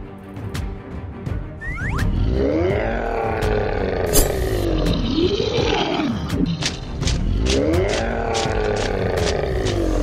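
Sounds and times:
monster growling roar: 0:02.1 - 0:06.6, 0:07.2 - 0:10.0.

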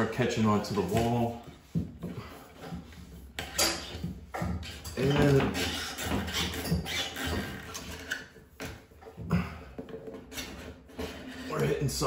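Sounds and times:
cable scraping against drywall: 0:00.0 - 0:12.0.

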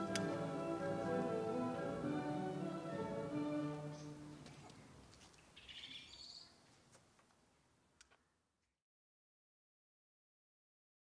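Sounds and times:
faint outdoor ambience: 0:00.0 - 0:08.8.

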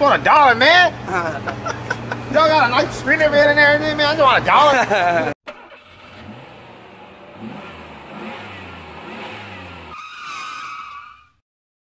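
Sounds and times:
vehicle engine revving: 0:05.5 - 0:10.1.

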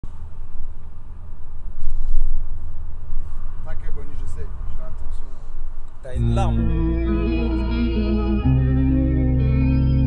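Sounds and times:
low steady rumble: 0:00.1 - 0:10.0.

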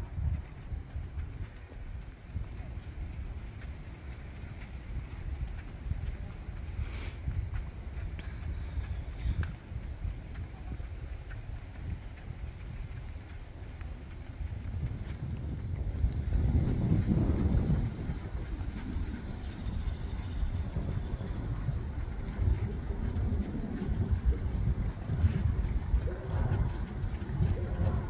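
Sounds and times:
horse hooves trotting on sand: 0:00.0 - 0:28.0
wind rumbling on microphone: 0:00.0 - 0:28.0.

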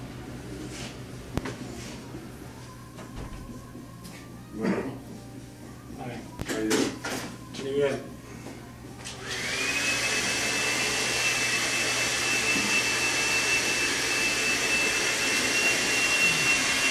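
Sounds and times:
electric blower motor whine: 0:09.1 - 0:16.9.

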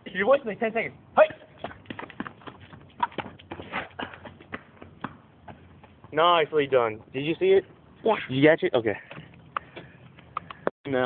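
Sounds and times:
footsteps running on pavement: 0:01.3 - 0:07.8, 0:08.9 - 0:10.7.

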